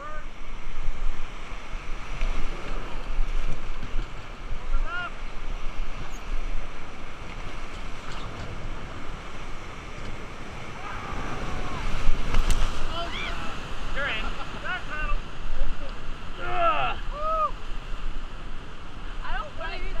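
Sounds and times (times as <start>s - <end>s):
waterfall roaring: 0.0s - 7.4s, 8.0s - 17.6s
wind on microphone: 0.0s - 20.0s.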